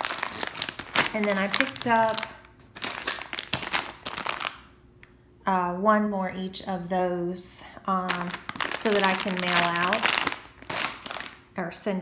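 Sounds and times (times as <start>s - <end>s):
plastic bags crinkling: 0.0s - 4.7s, 8.1s - 11.5s.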